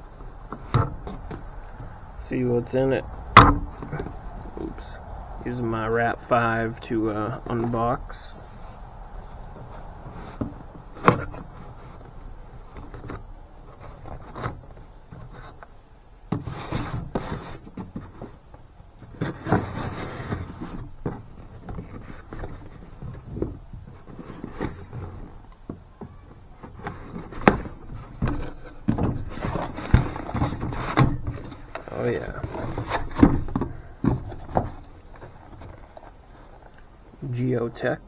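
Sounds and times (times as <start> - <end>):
sharp knocks: 3.3 - 4.0
cardboard flaps scraping: 7.3 - 15.7, 16.3 - 36.7.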